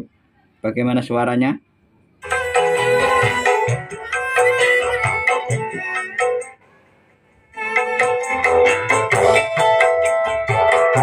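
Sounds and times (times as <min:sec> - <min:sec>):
music through a speaker: 0:02.2 - 0:11.0.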